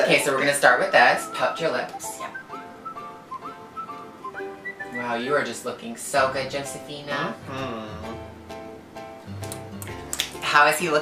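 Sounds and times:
light musical accompaniment: 0.0 - 11.0
whistled melody: 0.3 - 5.4.

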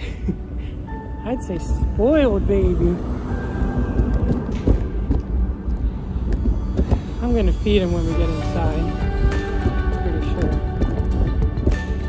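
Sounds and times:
stroller wheels rumbling: 1.9 - 12.0
stroller knocking over bumps: 9.0 - 12.0.

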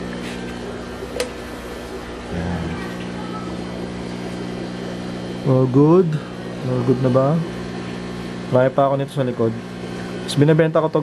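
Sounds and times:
aquarium air pump humming: 0.0 - 11.0.

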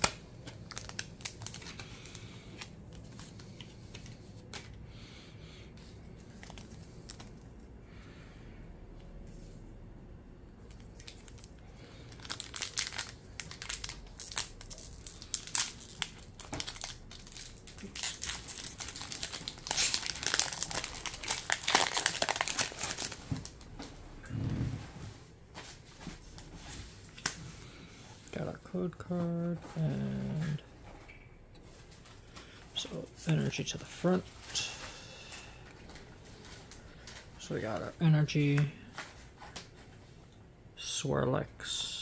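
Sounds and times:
foil wrapper crinkling and tearing: 0.0 - 3.2, 10.7 - 23.6.

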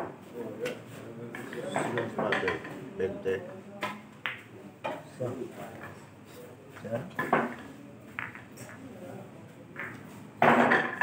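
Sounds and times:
pool balls clicking: 7.1 - 8.8, 9.8 - 11.0.

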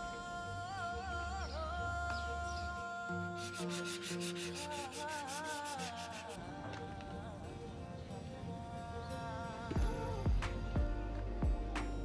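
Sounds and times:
background music with singing: 0.0 - 12.0
rag rubbing over steel pipe: 3.4 - 6.4.

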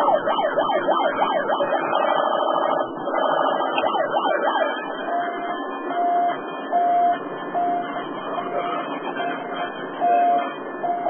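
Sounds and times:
rising and falling siren sweeps: 0.0 - 11.0
repeating electronic beep: 1.7 - 11.0.

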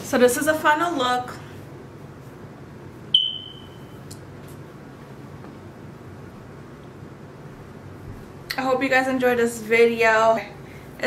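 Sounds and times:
high-pitched beep: 3.2 - 3.9.

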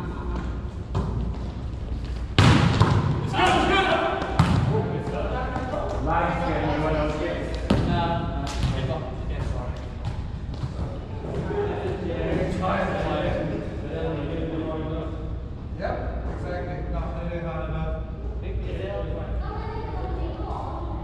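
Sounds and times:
volleyball slapping and bouncing: 0.3 - 3.4, 4.1 - 6.0, 7.5 - 10.9.

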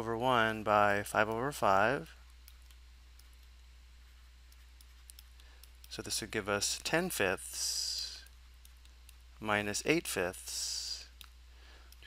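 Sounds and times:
low steady hum: 0.0 - 12.0
stylus clicking on tablet: 1.3 - 3.6, 4.4 - 6.1, 7.8 - 9.3.

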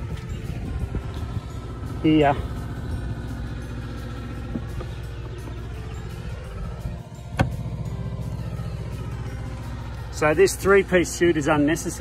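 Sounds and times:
machinery engine hum: 0.0 - 12.0.

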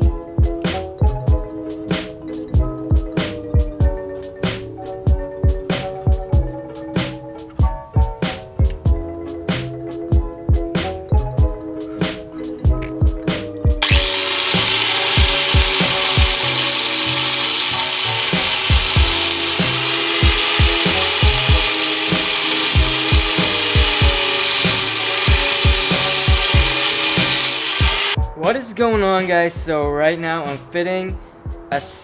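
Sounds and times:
background music with steady beat: 0.0 - 32.0
angle grinder whining on steel: 13.8 - 28.2.

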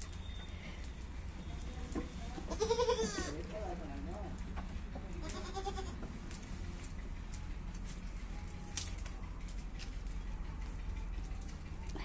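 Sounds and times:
goat bleating: 2.5 - 3.5, 5.2 - 6.0.

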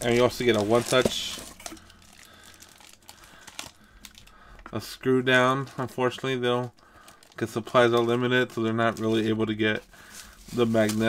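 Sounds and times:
plastic bag crinkling: 0.0 - 4.6, 5.6 - 11.0.

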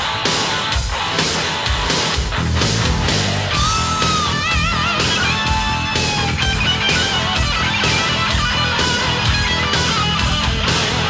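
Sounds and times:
bass guitar: 0.0 - 11.0
distorted electric guitar lead: 0.0 - 11.0
drum beat: 0.0 - 11.0.

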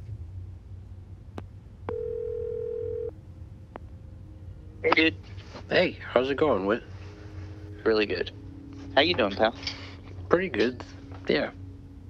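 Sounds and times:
telephone ringback tone: 1.9 - 3.1.

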